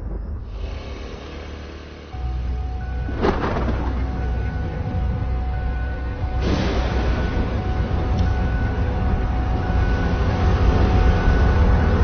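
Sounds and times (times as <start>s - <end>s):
deep rumbling drone: 0.0s - 12.0s.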